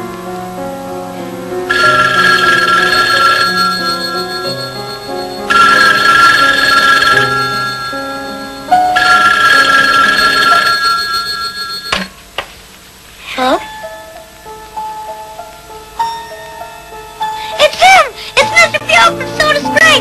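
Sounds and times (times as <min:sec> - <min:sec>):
soft background music: 0:00.0 - 0:12.2, 0:13.2 - 0:20.0
telephone bell ringing: 0:01.7 - 0:12.2.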